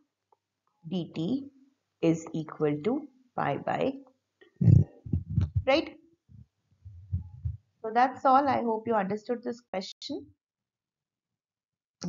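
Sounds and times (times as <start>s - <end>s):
woman speaking: 0.9s - 1.4s, 2.0s - 4.0s, 4.6s - 5.9s, 7.2s - 10.3s
faint low thuds: 4.6s - 5.9s, 6.9s - 7.6s
low rumble: 6.9s - 7.6s.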